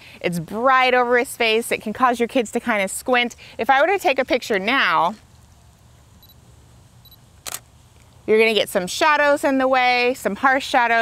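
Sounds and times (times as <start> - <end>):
camera beeps: 6.2 - 6.4, 7.0 - 7.6
camera shutter click: 7.4 - 7.6.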